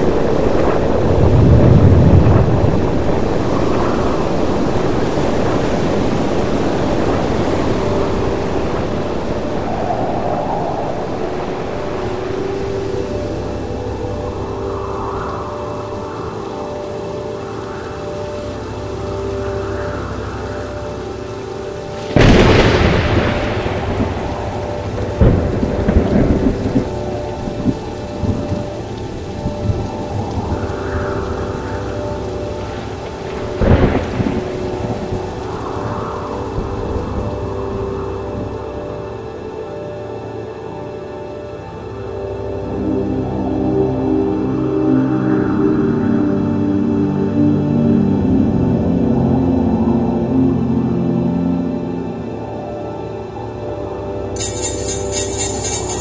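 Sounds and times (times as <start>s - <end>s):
thunderclap and rumbles: 0.0s - 12.0s, 22.0s - 38.6s
droning held tones: 0.0s - 56.0s
steady rain: 0.0s - 56.0s.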